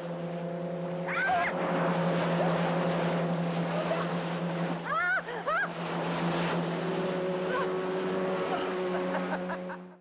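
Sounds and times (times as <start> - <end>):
motorboat engine droning: 0.0 - 10.0
water rushing against hull: 0.0 - 10.0.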